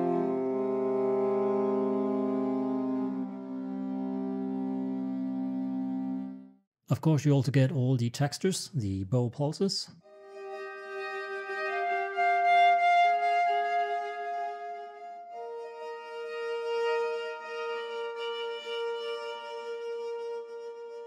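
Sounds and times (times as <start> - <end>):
viola bowed notes pulsing: 0.0 - 6.5, 10.1 - 21.0.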